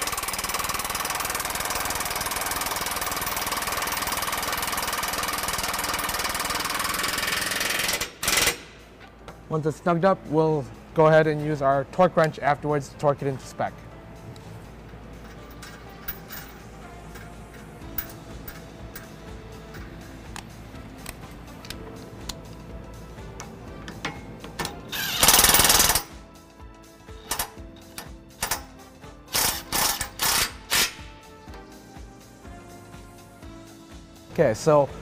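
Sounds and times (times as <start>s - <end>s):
impact wrench hammering: 0.0s - 8.8s, 24.0s - 26.1s, 27.3s - 31.1s
background music: 0.0s - 35.0s.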